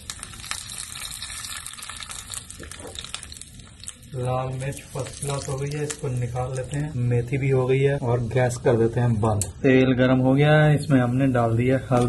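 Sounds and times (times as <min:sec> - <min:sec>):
spices sizzling in hot oil: 0:00.0 - 0:08.6.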